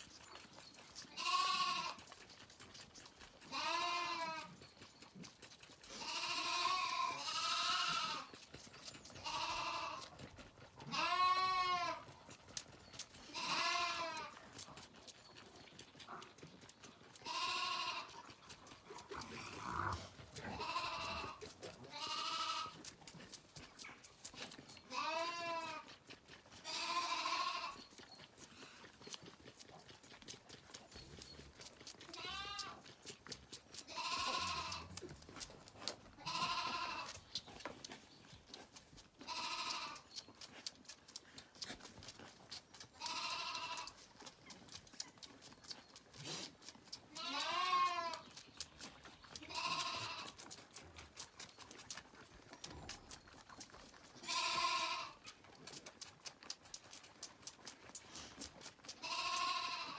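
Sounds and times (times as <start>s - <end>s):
lamb bleating: 1.1s - 2.2s, 3.4s - 4.6s, 5.9s - 8.3s, 9.2s - 10.2s, 10.8s - 12.1s, 13.2s - 14.4s, 17.1s - 18.4s, 19.0s - 23.0s, 24.9s - 25.9s, 26.6s - 27.9s, 32.0s - 32.9s, 33.8s - 35.2s, 36.1s - 37.2s, 39.2s - 40.1s, 43.0s - 44.0s, 47.1s - 48.3s, 49.4s - 50.4s, 54.2s - 55.4s, 58.9s - 59.9s.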